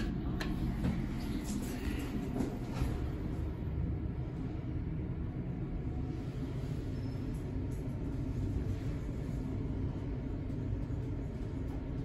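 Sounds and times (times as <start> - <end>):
elevator travelling rumble: 0.0 - 12.0.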